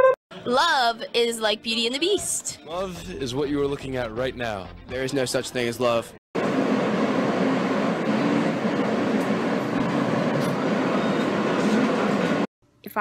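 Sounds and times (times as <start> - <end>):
subway train running: 6.4 - 12.5.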